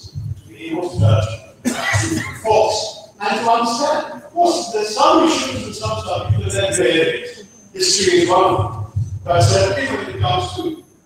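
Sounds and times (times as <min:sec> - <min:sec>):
man talking: 0:00.4 - 0:10.9.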